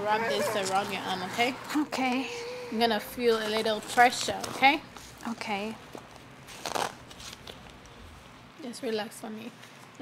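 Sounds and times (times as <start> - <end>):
velcro rustle: 6.4 - 7.8.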